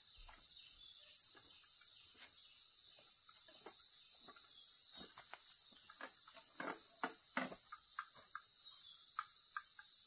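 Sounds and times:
insects chorus: 0.0s - 10.0s.

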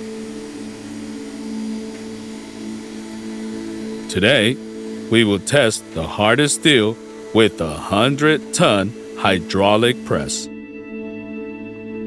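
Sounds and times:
low droning background music: 0.0s - 12.0s.

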